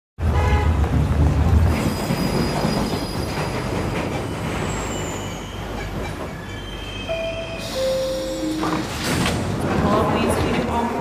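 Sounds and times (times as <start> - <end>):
subway train rumble and rattle: 0.2 - 11.0
high wheel squeals: 1.8 - 9.0.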